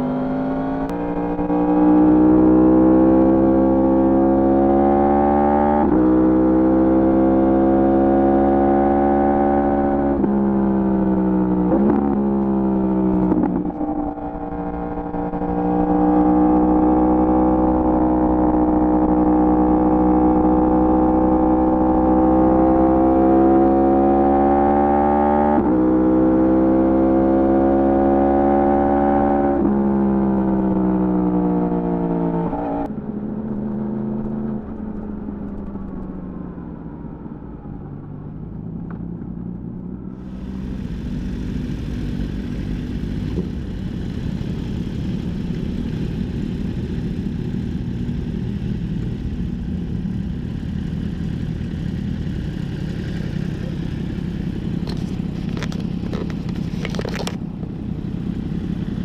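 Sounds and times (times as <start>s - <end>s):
motorcycle engine running: 0.0s - 5.5s, 6.2s - 25.0s, 39.2s - 59.0s
motorcycle engines idling low: 40.2s - 59.0s
motorcycle gear change: 54.8s - 57.7s.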